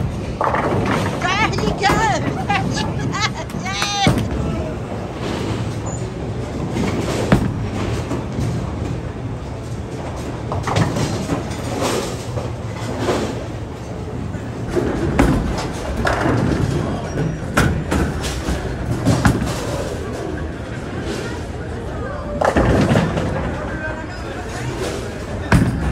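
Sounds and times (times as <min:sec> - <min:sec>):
background chatter: 0:00.0 - 0:07.4, 0:13.3 - 0:25.9
bowling pins crashing: 0:00.0 - 0:14.0, 0:14.6 - 0:21.1, 0:22.4 - 0:23.8, 0:24.6 - 0:25.9
bowling balls rolling: 0:00.0 - 0:25.9.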